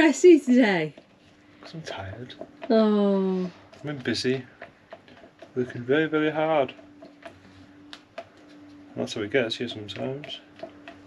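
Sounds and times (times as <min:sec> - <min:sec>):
faint steady hum: 0:00.0 - 0:11.0
plastic cup ticks and scrapes: 0:00.9 - 0:02.8, 0:03.5 - 0:11.0.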